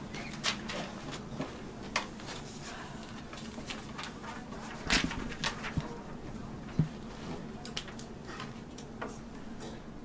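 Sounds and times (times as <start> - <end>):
paper being handled: 1.9 - 6.1.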